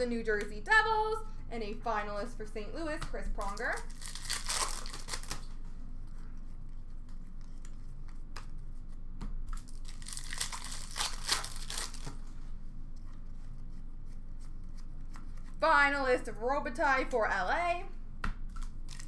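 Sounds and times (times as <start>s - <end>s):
foil wrapper tearing and crinkling: 3.4s - 5.5s, 9.6s - 12.2s, 18.5s - 19.0s.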